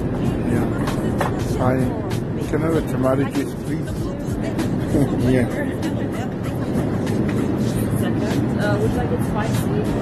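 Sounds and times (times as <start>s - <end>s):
airliner cabin rumble: 0.0s - 10.0s
faint voices murmuring: 0.0s - 10.0s.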